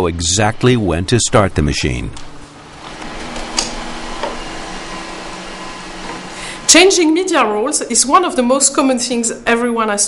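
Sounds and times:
printer humming: 0.0s - 9.2s.

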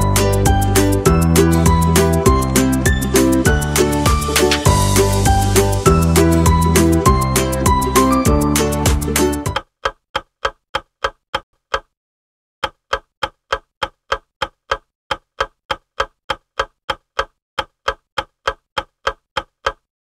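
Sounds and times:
background music: 0.0s - 9.6s
ticking clock: 9.5s - 11.9s, 12.6s - 19.9s.

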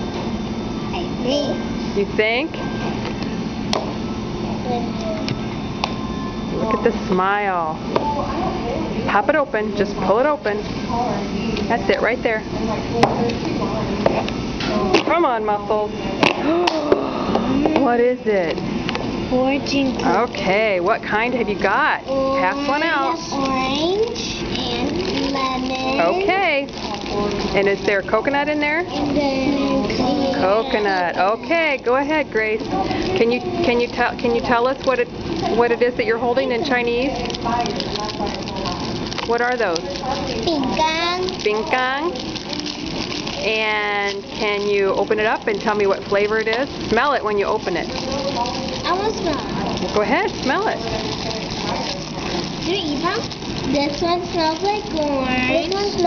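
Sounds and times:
cellophane wrappers crinkling: 19.8s - 56.0s
quiet voices: 28.9s - 33.7s, 47.4s - 56.0s.

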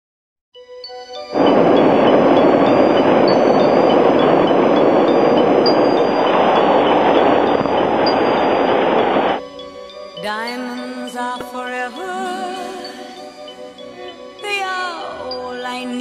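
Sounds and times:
chiming music: 0.6s - 16.0s
subway train rumbling: 1.4s - 9.4s.

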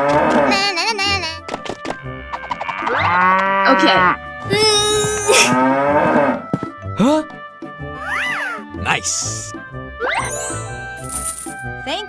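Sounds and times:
background music: 0.0s - 12.0s
cattle mooing: 2.6s - 4.2s, 5.5s - 6.4s.

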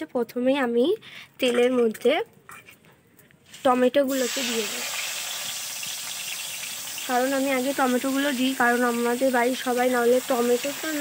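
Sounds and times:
tomatoes sizzling in hot oil: 3.5s - 11.0s.

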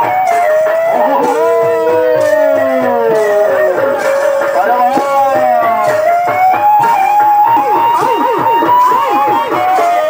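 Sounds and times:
fast drumming on barrel drums: 0.0s - 10.0s
reed pipe melody: 0.0s - 10.0s.

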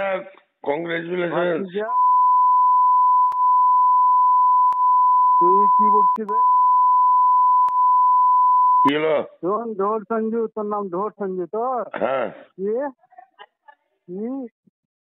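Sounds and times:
censor bleep tone: 1.9s - 8.9s
phone call speech: 5.4s - 6.6s.

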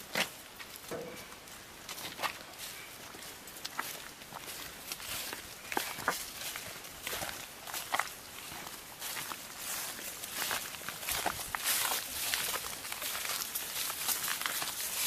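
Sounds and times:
footsteps on dry leaves: 0.0s - 15.0s.

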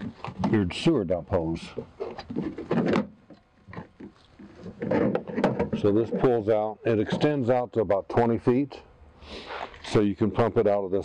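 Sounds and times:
hose rubbing and scraping: 3.7s - 7.4s.

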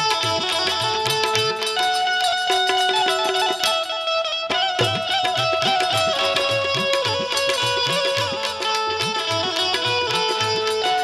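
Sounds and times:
plucked string melody: 0.0s - 11.0s.

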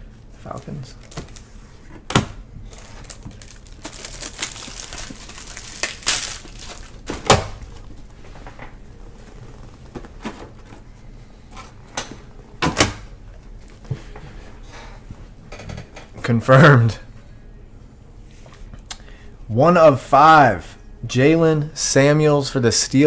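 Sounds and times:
packaging rustling and tearing: 0.6s - 1.6s, 2.7s - 8.0s.

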